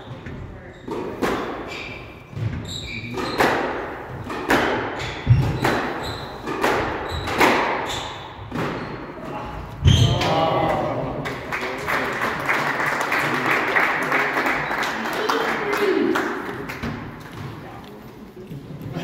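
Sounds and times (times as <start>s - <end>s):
squash ball hitting rackets and walls: 0.0s - 10.7s, 16.3s - 17.7s.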